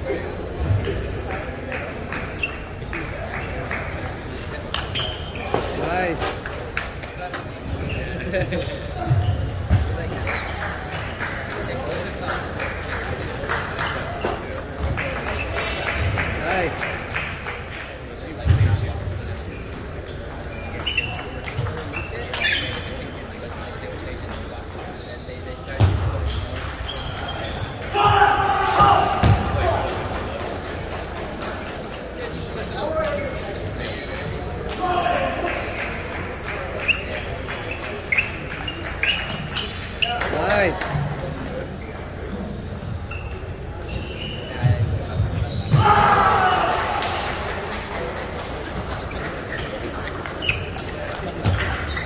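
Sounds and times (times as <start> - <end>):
background chatter: 0.0 - 52.0.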